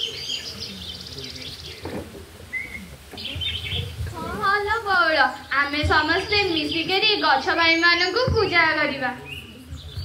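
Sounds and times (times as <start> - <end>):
small birds chirping trills: 0.0 - 10.0.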